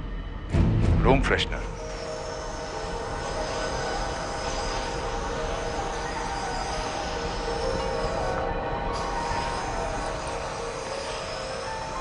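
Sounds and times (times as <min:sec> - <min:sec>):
steady droning tone: 0:00.0 - 0:12.0.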